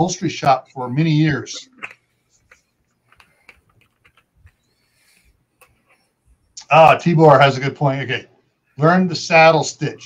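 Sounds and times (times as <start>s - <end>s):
faint clicks and light knocks: 1.8s - 4.7s.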